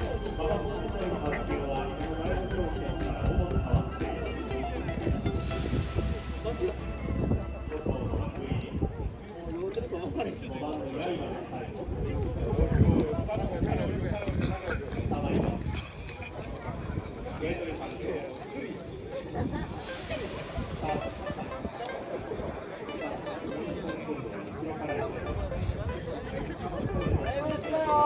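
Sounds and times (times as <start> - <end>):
announcer over loudspeaker: 0.0 - 8.8
people talking: 0.0 - 28.0
low rumble: 4.1 - 9.2
hiss: 5.1 - 6.7, 18.9 - 22.9.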